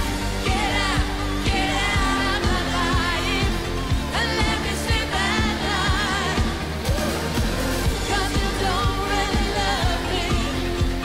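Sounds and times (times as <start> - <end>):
woman singing: 0.3 - 7.2, 7.8 - 11.0
drum beat: 6.8 - 8.6.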